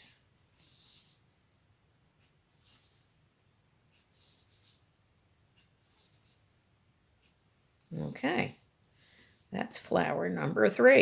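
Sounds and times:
marker scratching on paper: 0:00.4 - 0:01.3, 0:02.2 - 0:03.2, 0:03.9 - 0:04.9, 0:05.5 - 0:06.5, 0:07.2 - 0:08.7.

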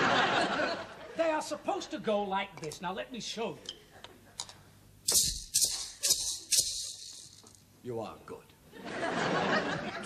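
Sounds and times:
maracas shaken: 0:05.1 - 0:07.7.

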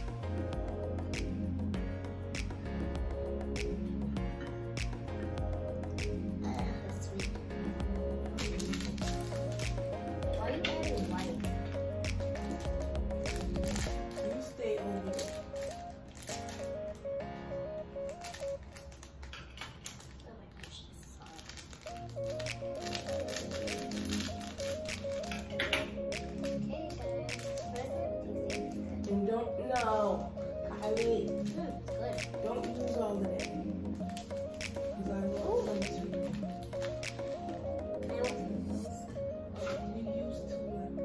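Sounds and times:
background music with bass line: 0:00.0 - 0:18.6, 0:21.9 - 0:41.0.

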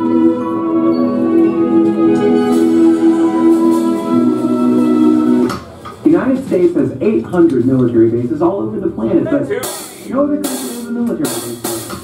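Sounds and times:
electric guitars sustained chord: 0:00.0 - 0:05.7.

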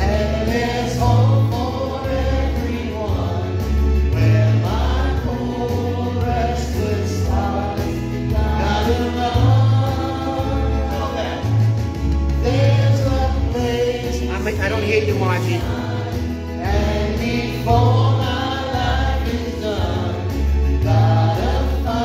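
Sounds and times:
choir singing: 0:00.0 - 0:22.0
steady bass line: 0:00.0 - 0:22.0.

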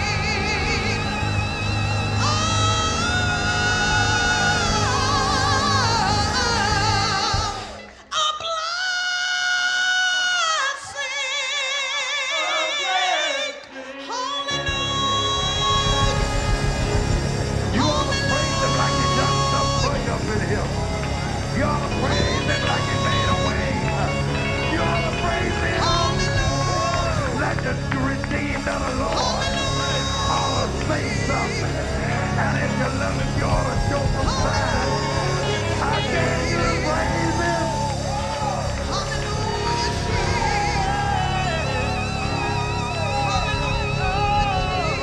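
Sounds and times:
gospel band playing: 0:00.0 - 0:08.3, 0:12.2 - 0:45.0
man speaking through microphone: 0:17.7 - 0:20.9, 0:21.5 - 0:37.9.

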